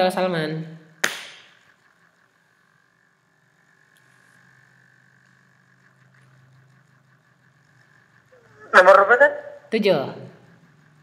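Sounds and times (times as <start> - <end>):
faint steady hum: 0.0 - 11.0
sharp click: 1.0 - 1.6.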